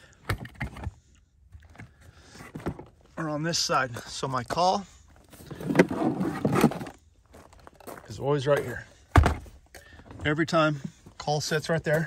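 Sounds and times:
hard plastic scraping and knocking: 0:05.6 - 0:07.0.

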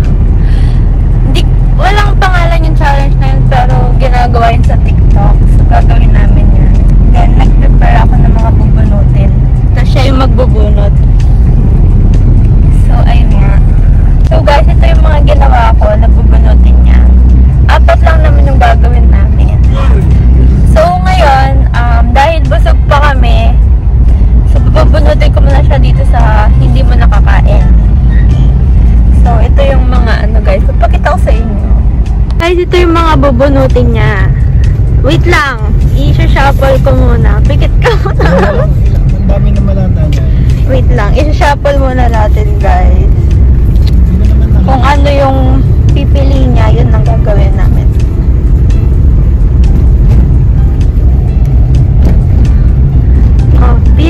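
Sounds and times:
low rumble inside car: 0:00.0 - 0:54.0
person speaking: 0:37.8 - 0:41.3.

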